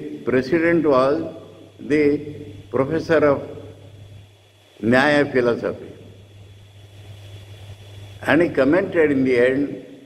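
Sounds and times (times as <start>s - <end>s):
faint hiss: 0.0s - 10.0s
low hum: 0.0s - 10.0s.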